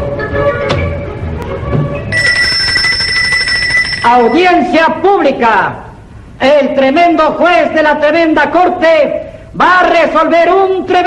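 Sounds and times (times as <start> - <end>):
electric bell ringing: 2.1 - 4.8.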